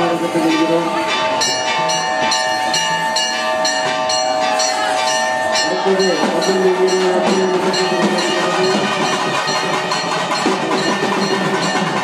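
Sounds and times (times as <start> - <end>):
temple bells ringing: 0.0 - 12.0.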